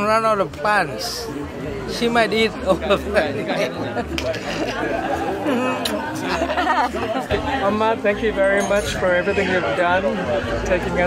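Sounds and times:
party chatter: 0.0s - 11.0s.

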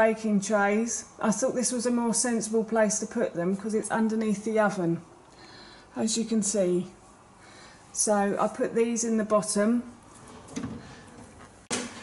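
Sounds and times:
drawer shutting with soft bump: 10.2s - 12.0s.

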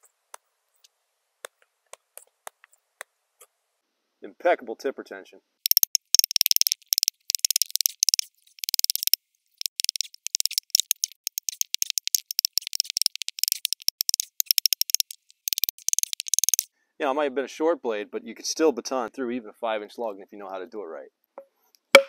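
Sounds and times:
rapid high-pitched clicking and rattling: 5.7s - 16.7s.

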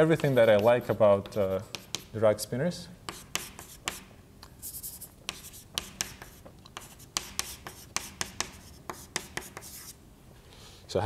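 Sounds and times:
chalk tapping and scratching: 0.0s - 2.2s, 3.1s - 10.0s.

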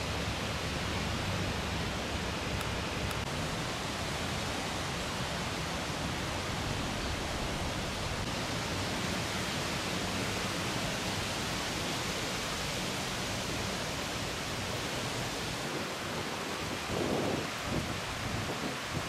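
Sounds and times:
steady wind noise: 0.0s - 19.0s.

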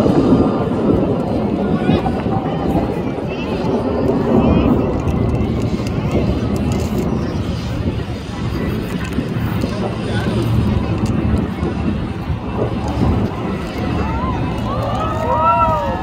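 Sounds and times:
crowd chatter: 0.0s - 16.0s
jet engine rumble overhead: 0.0s - 16.0s.

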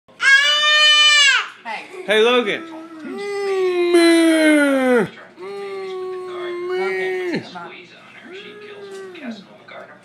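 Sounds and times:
short falling vocal sound: 3.0s - 6.1s.

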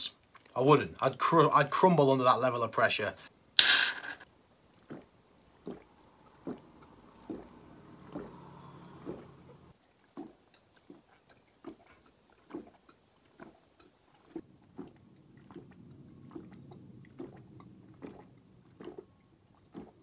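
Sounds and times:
man gulping a drink: 10.2s - 20.0s.

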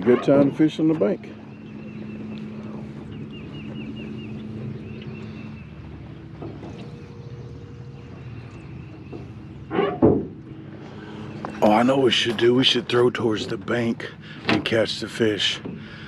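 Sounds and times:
small boat motor humming: 0.0s - 16.0s.

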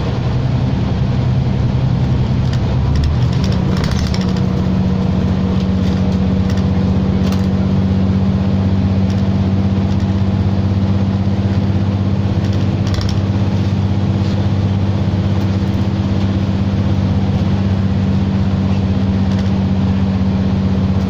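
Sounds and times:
bus engine drone: 0.0s - 21.0s
road noise: 0.0s - 21.0s
interior rattles: 2.3s - 7.7s, 9.0s - 16.4s.

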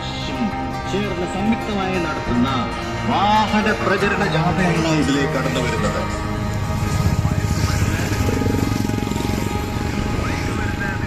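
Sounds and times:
background music: 0.0s - 11.0s
motorcycle engines passing: 0.0s - 11.0s.

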